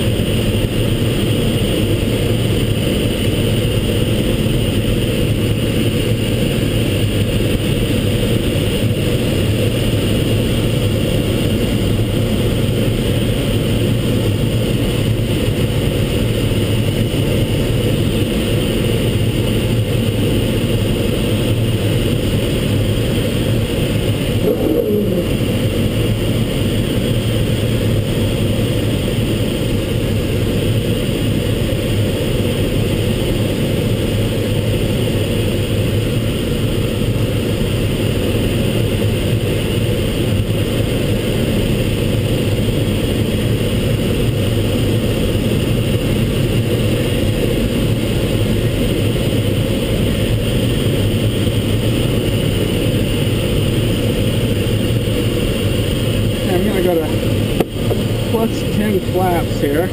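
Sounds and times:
air rushing past cockpit: 19.2 - 28.3.

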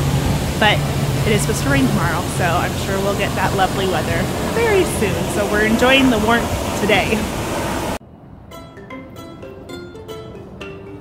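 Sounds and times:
outdoor background noise: 0.0 - 11.0
person's voice: 0.6 - 7.3
plucked string background music: 8.5 - 11.0.

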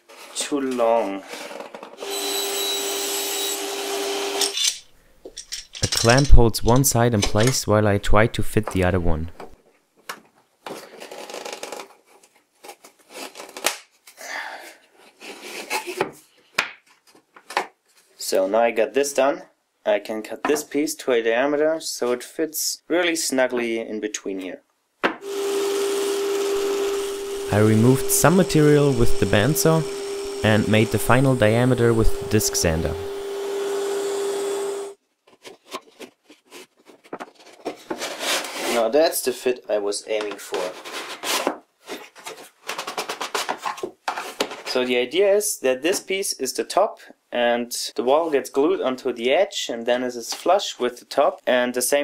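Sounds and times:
disc sander motor hum: 25.2 - 35.0.

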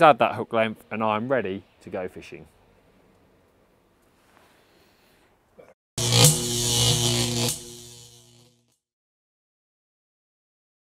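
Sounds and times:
held low chord: 6.0 - 8.6.

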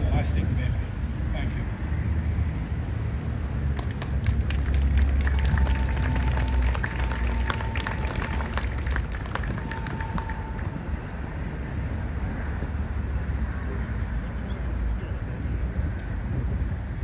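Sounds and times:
crowd applauding: 3.7 - 11.0
low rumble: 4.5 - 13.4.

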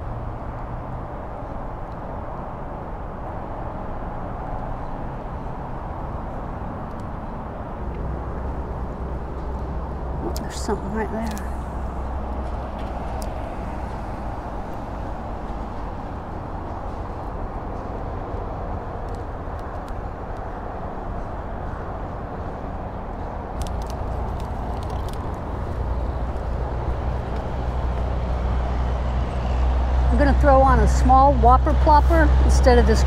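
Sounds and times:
road traffic rumble: 0.0 - 33.0.

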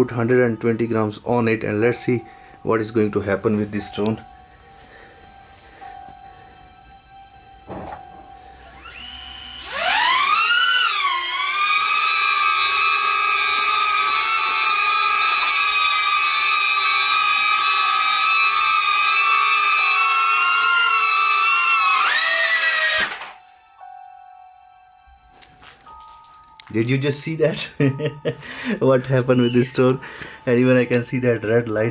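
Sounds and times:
drone propellers high-pitched whine: 4.7 - 23.4.

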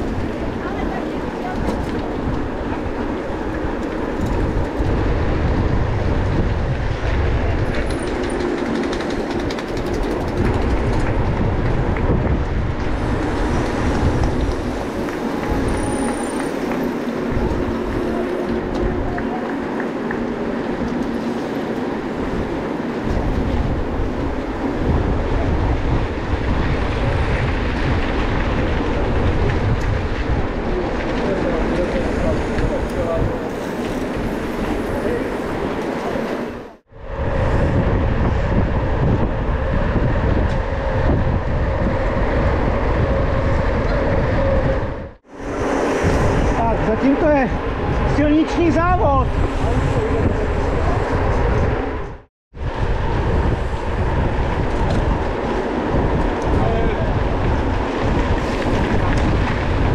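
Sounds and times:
bicycle tyre noise on tarmac: 0.0 - 59.9
wind buffeting microphone: 0.0 - 59.9
voices of riders: 15.1 - 19.8, 30.6 - 36.6.

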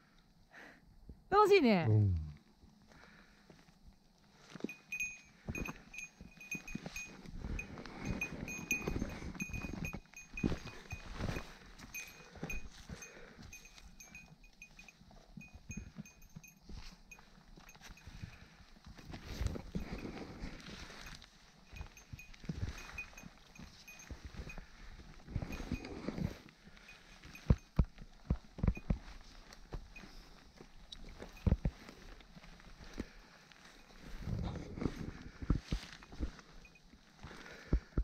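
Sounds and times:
small bell jingling: 4.7 - 18.6, 20.9 - 27.8, 36.6 - 36.8.

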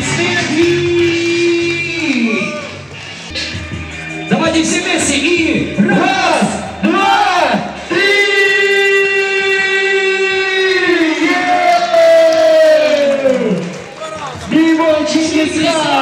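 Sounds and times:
man shouting over a microphone: 0.0 - 2.8, 5.7 - 16.0.

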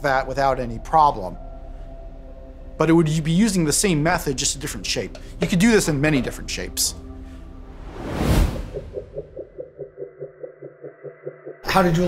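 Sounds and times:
sound-design whoosh: 7.7 - 9.4.

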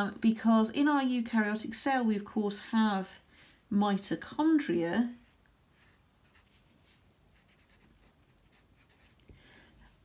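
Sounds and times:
marker scratching on paper: 5.2 - 6.7, 7.3 - 9.2.

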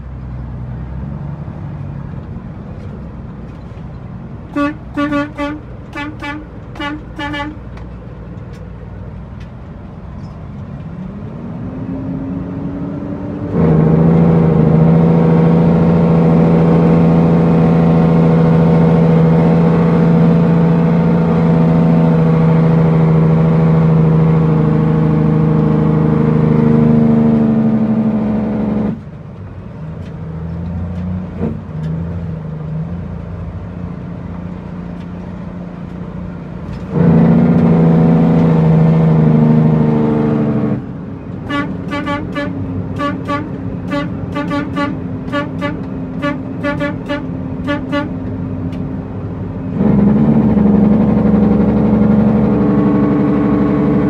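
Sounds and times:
truck diesel engine droning: 0.0 - 54.0.

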